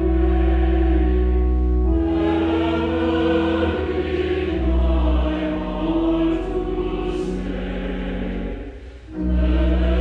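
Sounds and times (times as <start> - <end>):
choir singing sustained chords: 0.0 - 10.0
organ accompaniment: 0.0 - 10.0.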